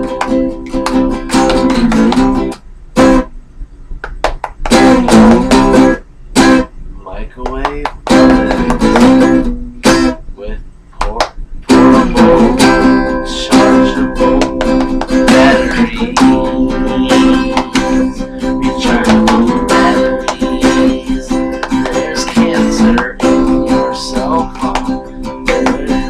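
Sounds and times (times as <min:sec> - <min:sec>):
acoustic guitar strumming: 0:00.0 - 0:03.4, 0:04.0 - 0:06.8, 0:07.4 - 0:10.4, 0:11.0 - 0:26.0.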